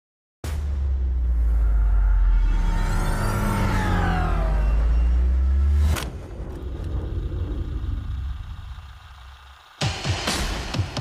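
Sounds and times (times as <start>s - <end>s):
spaceships rumbling past: 0.6s - 9.7s
falling whines: 1.2s - 11.0s.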